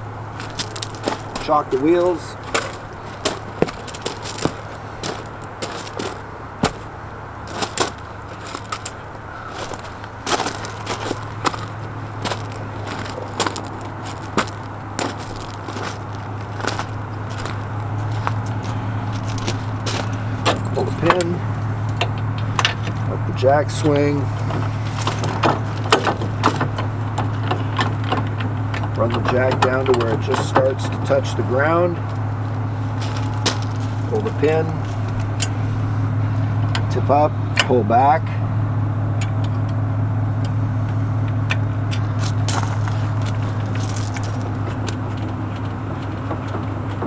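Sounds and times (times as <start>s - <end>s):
footsteps crunching on gravel: 0.0s - 21.4s, 22.8s - 28.0s, 28.9s - 36.2s, 42.0s - 47.0s
steady low hum: 0.0s - 47.0s.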